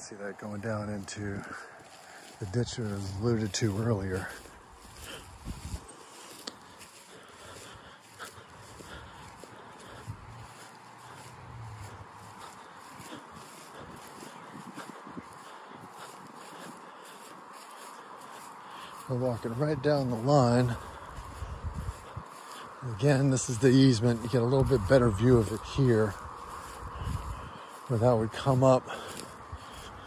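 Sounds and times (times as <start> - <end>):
faint outdoor hiss: 0.0 - 13.8
footsteps through dry grass: 0.0 - 30.0.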